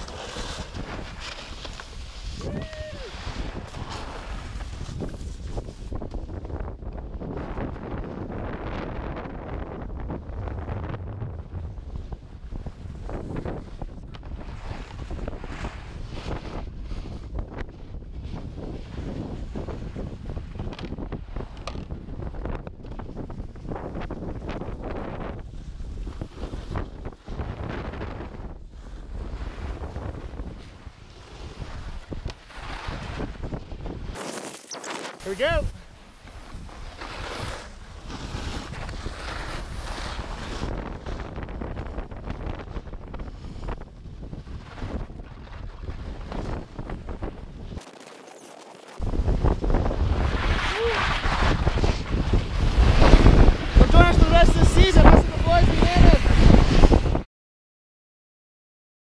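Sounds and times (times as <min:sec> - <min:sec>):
wind buffeting microphone: 0:00.0 - 0:34.2, 0:35.4 - 0:47.8, 0:49.0 - 0:57.3
snowboard sliding over snow: 0:00.0 - 0:57.2.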